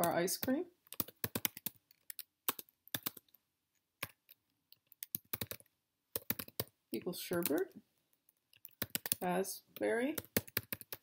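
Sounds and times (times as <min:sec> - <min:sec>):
typing on computer keyboard: 0:00.0 - 0:03.4, 0:04.0 - 0:07.6, 0:08.5 - 0:09.2, 0:10.2 - 0:11.0.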